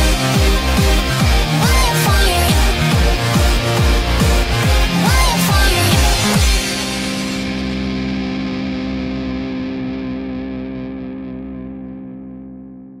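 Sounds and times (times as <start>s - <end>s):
distorted electric guitar chord ringing: 0.0s - 13.0s.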